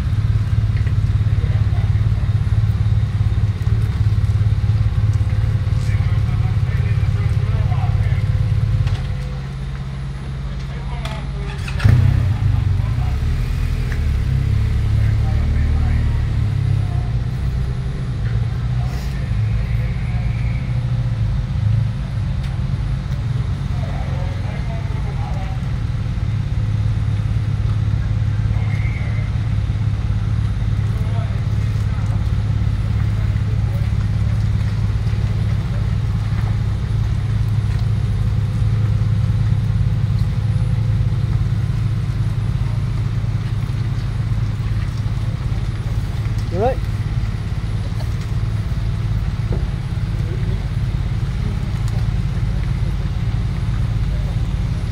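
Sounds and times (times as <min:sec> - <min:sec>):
diesel engine droning: 0:00.0 - 0:54.9.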